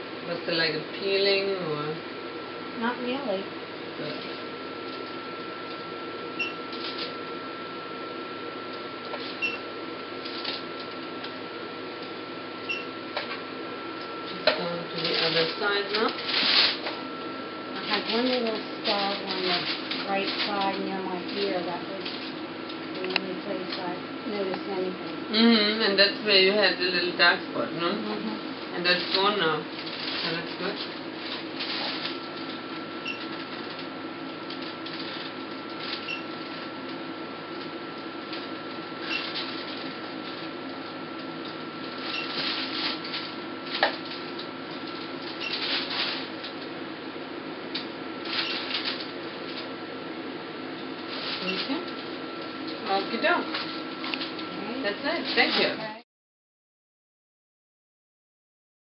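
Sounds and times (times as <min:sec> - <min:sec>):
machine hum: 0:00.0 - 0:56.0
thin constant whine: 0:00.0 - 0:56.0
machine beep-clicks: 0:06.4 - 0:06.6.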